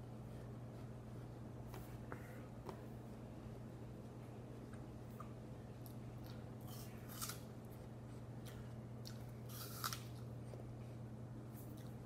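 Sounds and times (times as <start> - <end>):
softer chewing: 0.0 - 12.0
apple crunching: 4.6 - 12.0.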